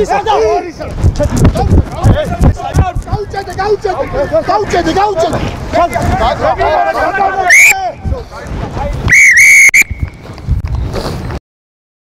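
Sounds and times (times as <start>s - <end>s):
referee's whistle blast: 7.5s - 7.8s, 9.1s - 10.1s.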